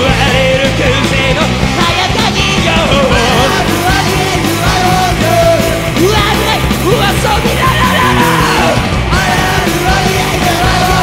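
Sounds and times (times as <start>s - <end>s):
punk rock band playing: 0.0s - 11.0s
man yelling vocals: 5.5s - 8.9s.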